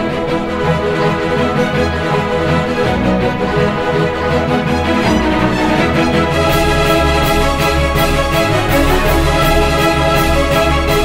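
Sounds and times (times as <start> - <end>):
music with steady beat: 3.2 - 11.0.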